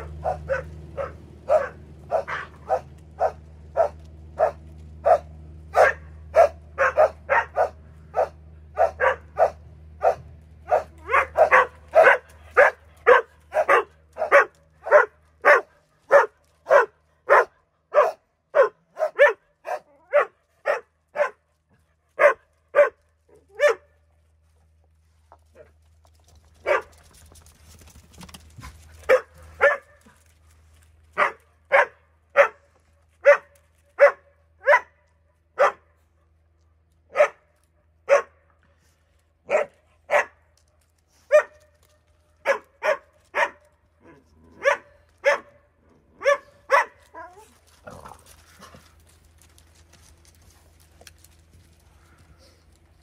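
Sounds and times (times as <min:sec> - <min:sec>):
dog barking: 0:00.0 - 0:21.4, 0:22.2 - 0:23.9, 0:26.6 - 0:26.9, 0:29.1 - 0:30.0, 0:31.2 - 0:35.0, 0:35.6 - 0:35.9, 0:37.1 - 0:38.4, 0:39.5 - 0:40.4, 0:41.3 - 0:41.6, 0:42.4 - 0:43.6, 0:44.6 - 0:45.6, 0:46.2 - 0:47.5.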